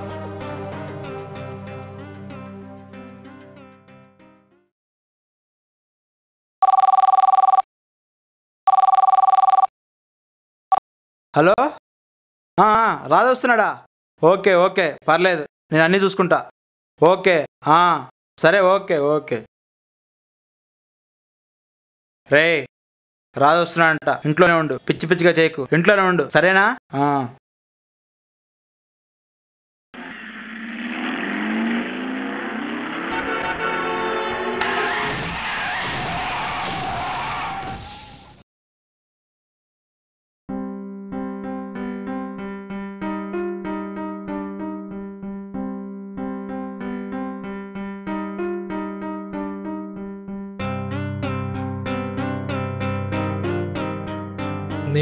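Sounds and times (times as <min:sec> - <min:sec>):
mobile phone two-tone ring: 0:06.6 - 0:07.6, 0:08.7 - 0:09.7
tyres skidding squeal: 0:30.0 - 0:38.3.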